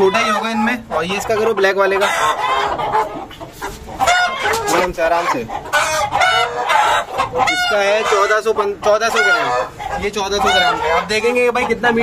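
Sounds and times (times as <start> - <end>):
chickens calling: 0.0 - 12.0.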